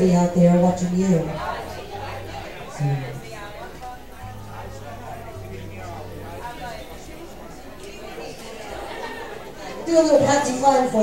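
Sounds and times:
woman speaking over microphone: 0.0 - 1.4, 9.8 - 11.0
people chattering indoors: 0.0 - 11.0.

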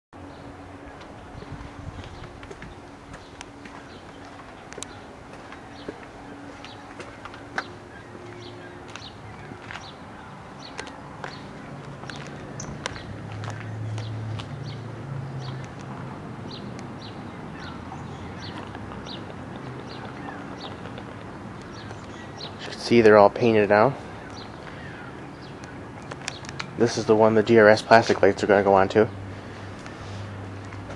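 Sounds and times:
small birds chirping: 0.2 - 30.9.

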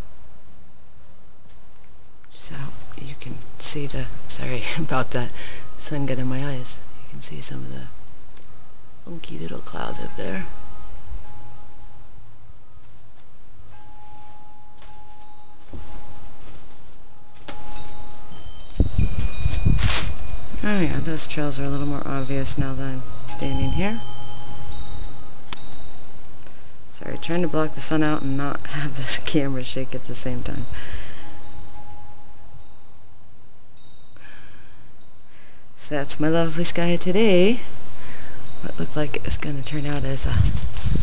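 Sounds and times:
low wind rumble: 2.1 - 41.0
wind chimes ringing: 2.4 - 41.0
low rumble on microphone: 13.6 - 29.6, 39.5 - 41.0.

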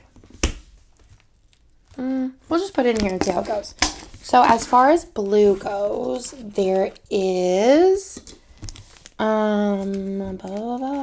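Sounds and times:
plastic rustle: 7.9 - 11.0.

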